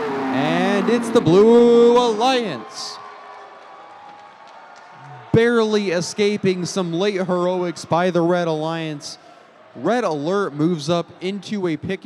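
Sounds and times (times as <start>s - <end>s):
crowd cheering and applause: 0.0s - 11.8s.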